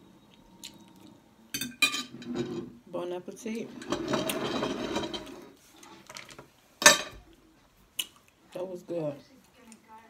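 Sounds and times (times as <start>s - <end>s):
plate scraping across table: 2.0s - 2.8s, 3.6s - 5.6s.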